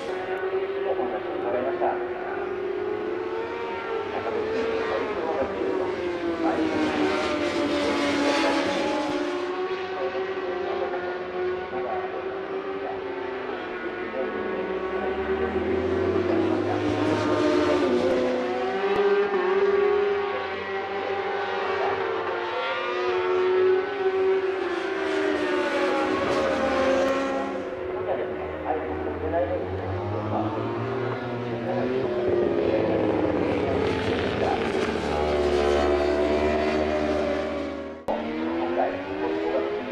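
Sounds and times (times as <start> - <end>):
motorcycle engines at racing revs: 0.0 - 39.9.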